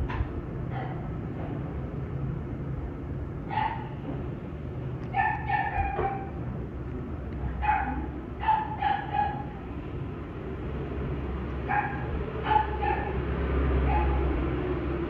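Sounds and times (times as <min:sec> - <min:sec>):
small dog yipping: 0:03.5 - 0:03.9, 0:05.1 - 0:06.4, 0:07.6 - 0:09.5, 0:11.7 - 0:13.1.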